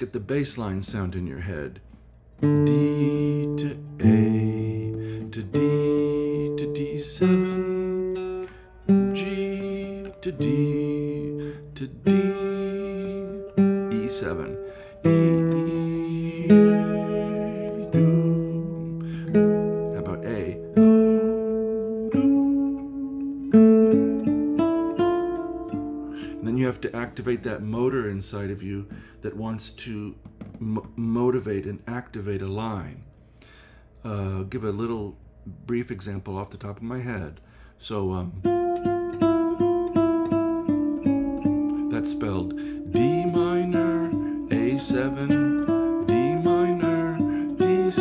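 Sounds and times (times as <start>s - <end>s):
classical guitar chords: 1.8s - 31.6s, 38.4s - 48.0s.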